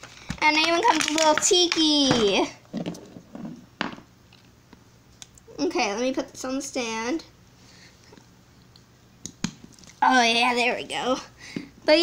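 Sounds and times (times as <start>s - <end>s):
handling toy and packaging: 0.0s - 3.6s.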